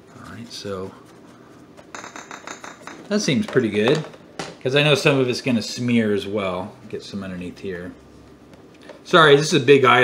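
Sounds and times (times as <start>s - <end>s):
paintbrush scratching on plastic: 0.0s - 2.0s.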